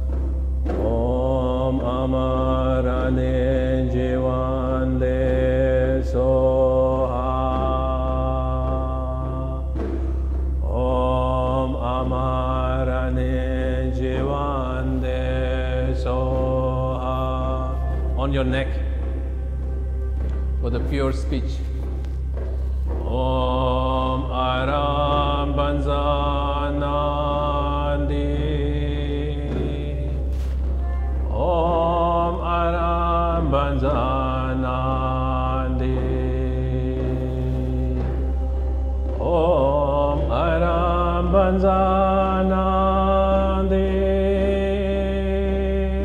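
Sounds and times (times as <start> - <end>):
steady low hum: 0.0 - 46.0
man chanting: 0.7 - 9.8, 10.7 - 19.5, 20.6 - 21.8, 23.0 - 30.3, 31.2 - 38.4, 39.1 - 46.0.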